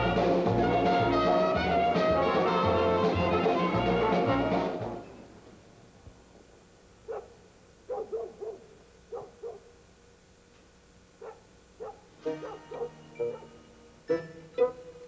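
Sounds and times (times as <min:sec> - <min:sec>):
dog barking: 0:07.0 - 0:09.8, 0:11.2 - 0:13.6, 0:14.5 - 0:15.0.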